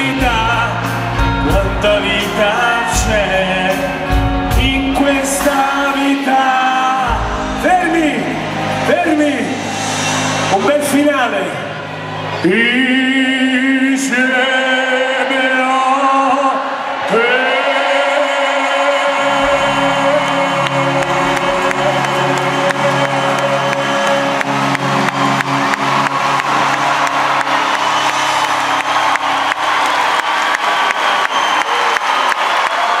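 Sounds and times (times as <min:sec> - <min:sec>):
male singer: 0:00.0 - 0:09.5, 0:12.4 - 0:25.0
live pop band closing chord: 0:00.0 - 0:33.0
audience clapping and cheering: 0:02.5 - 0:10.7, 0:16.3 - 0:33.0.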